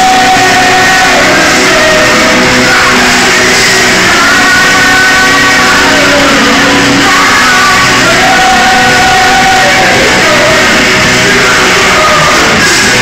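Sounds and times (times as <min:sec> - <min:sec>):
person singing long notes: 0:00.0 - 0:13.0
rock band playing live: 0:00.0 - 0:13.0.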